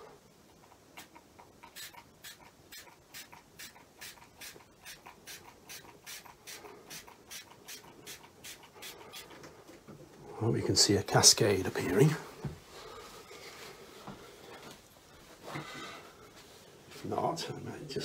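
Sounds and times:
spray bottle misting hisses: 1.7 - 9.3.

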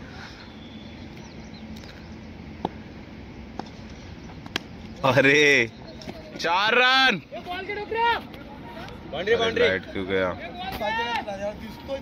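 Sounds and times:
open-air background hum: 0.0 - 12.0.

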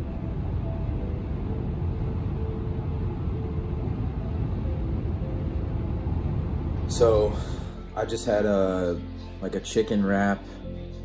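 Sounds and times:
car cabin road rumble: 0.0 - 8.9.

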